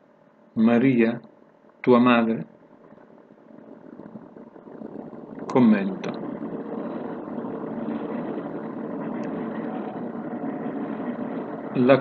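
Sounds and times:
steady engine-like noise: 1.8s - 12.0s.

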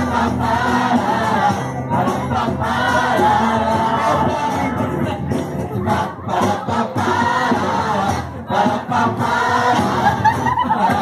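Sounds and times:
crowd singing: 0.0s - 11.0s
music: 0.0s - 11.0s.

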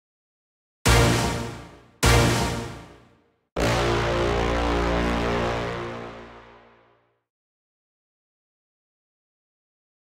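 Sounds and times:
held brass chord: 0.9s - 3.0s, 3.6s - 7.1s.

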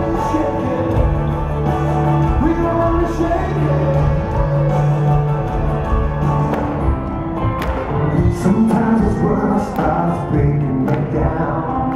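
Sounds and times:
live band music: 0.0s - 11.9s.

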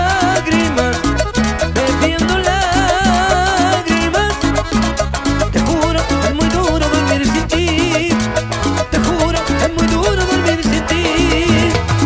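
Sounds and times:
accordion melody: 0.0s - 12.0s
cumbia band playing: 0.0s - 12.0s.

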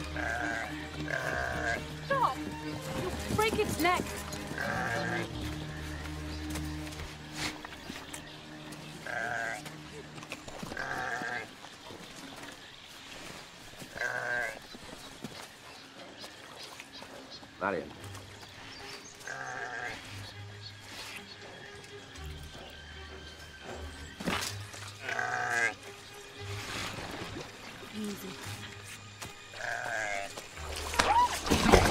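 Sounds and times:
ram bleating: 0.0s - 2.4s, 4.5s - 5.4s, 9.0s - 9.7s, 10.7s - 11.5s, 13.9s - 14.6s, 19.2s - 20.0s, 25.0s - 25.8s, 29.5s - 30.4s
film score music: 0.0s - 31.9s.

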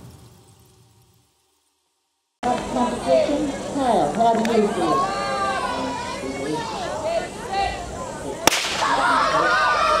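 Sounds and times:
children shouting: 4.4s - 10.0s
starting pistol crack: 8.5s - 9.0s.

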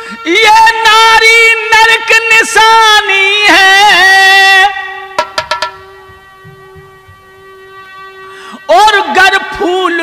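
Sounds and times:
held instrumental note: 5.2s - 7.9s.

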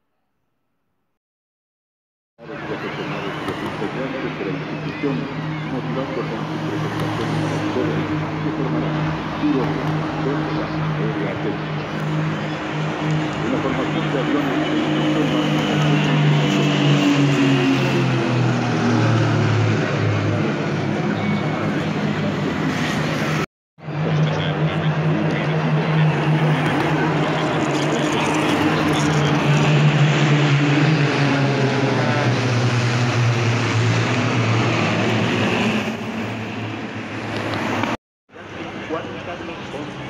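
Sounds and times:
propeller planes droning overhead: 2.4s - 40.0s.

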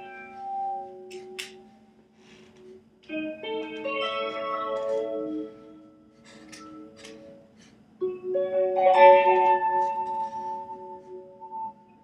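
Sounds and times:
electric guitar with delay: 3.0s - 12.0s.

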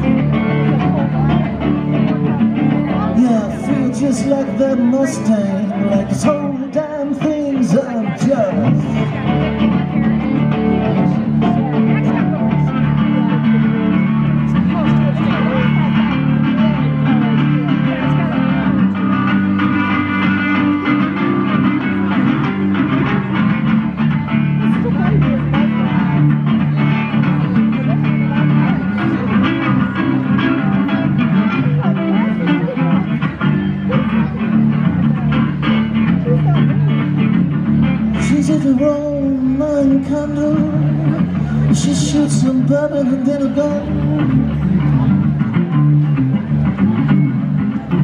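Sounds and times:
amplified blues guitar solo: 0.0s - 48.0s
low bass line: 0.0s - 48.0s.

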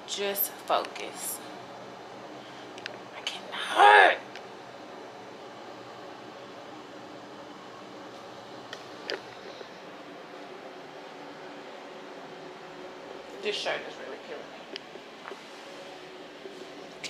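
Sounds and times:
air conditioner hiss and hum: 0.0s - 17.0s.

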